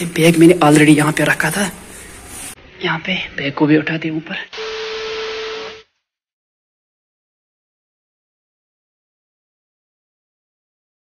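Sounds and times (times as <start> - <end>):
steady hiss: 4.5 - 5.8.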